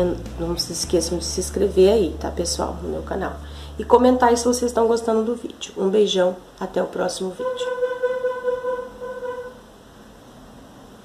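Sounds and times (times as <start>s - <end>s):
held tone with overtones: 7.3s - 9.7s.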